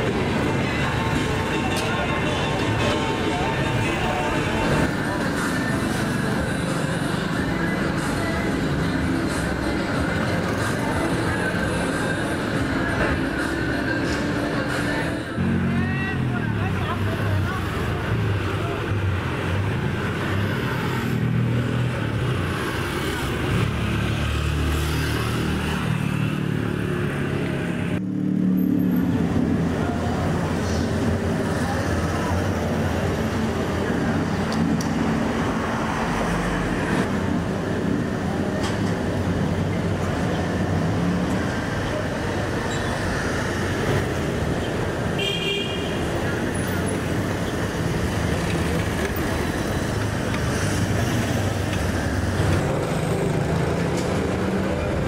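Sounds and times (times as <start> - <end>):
motorbikes and cars passing: 0.0 - 55.0.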